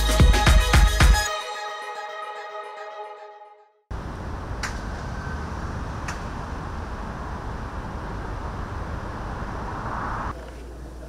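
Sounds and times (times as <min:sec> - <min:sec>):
urban traffic rumble: 0:03.9 - 0:11.0.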